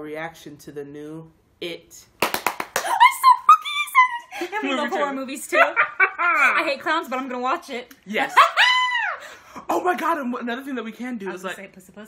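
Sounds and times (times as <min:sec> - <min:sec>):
hand claps: 0:02.2 - 0:03.1
woman squealing: 0:02.8 - 0:04.3, 0:08.3 - 0:09.4
laughter: 0:04.3 - 0:06.7.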